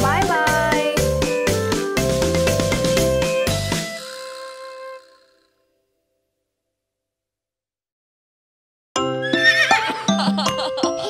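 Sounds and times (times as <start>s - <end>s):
children's song: 0.0s - 1.3s.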